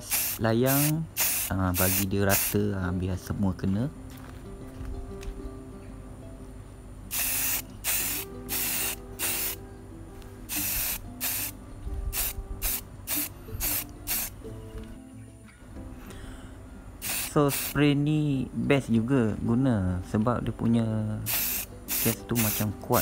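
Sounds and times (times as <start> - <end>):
aerosol spray can bursts: 0.0 - 2.7, 7.1 - 9.6, 10.5 - 14.4, 17.0 - 17.8, 21.3 - 23.0.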